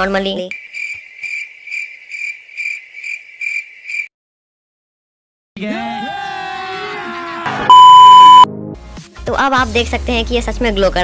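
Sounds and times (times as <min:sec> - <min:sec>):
crickets chirping: 0:00.5 - 0:04.1.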